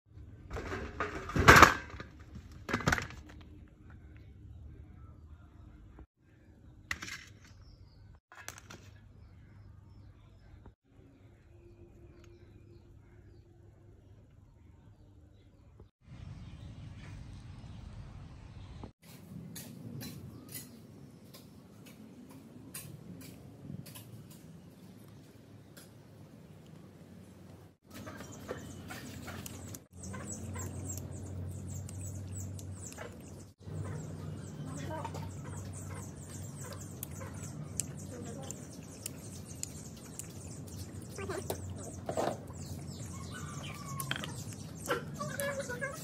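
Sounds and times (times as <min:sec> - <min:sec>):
fruit clattering onto metal tray: 0:00.5 - 0:03.3.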